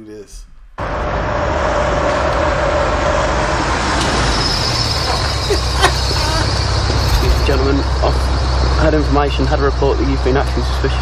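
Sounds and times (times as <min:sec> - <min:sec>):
car approaching and pulling up: 0:00.6 - 0:11.0
road traffic noise: 0:00.8 - 0:11.0.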